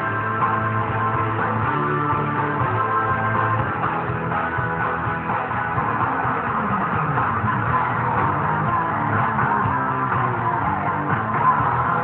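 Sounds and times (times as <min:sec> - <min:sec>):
electric guitar playing rock: 0:00.0 - 0:12.0.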